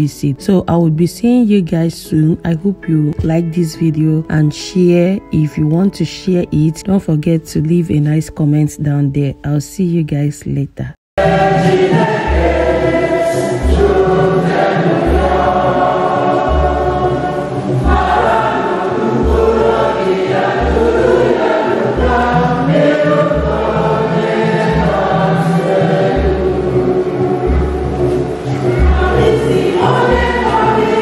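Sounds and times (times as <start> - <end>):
band playing: 11.2 - 31.0
group gospel singing: 11.2 - 31.0.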